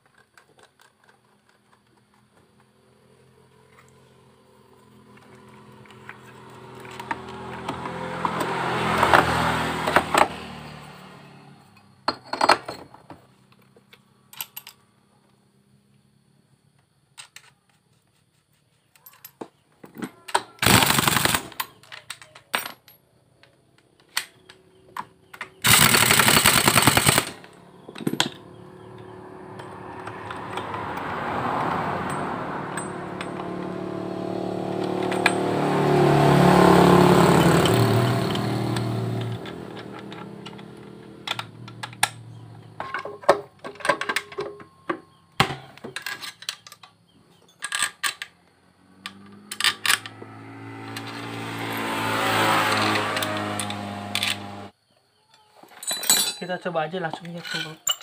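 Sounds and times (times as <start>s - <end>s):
tools clinking: 21.6s - 31.1s, 32.0s - 34.0s, 34.6s - 35.6s, 37.3s - 44.8s, 45.5s - 48.3s, 49.0s - 51.2s, 52.6s - 54.6s, 55.4s - 58.0s.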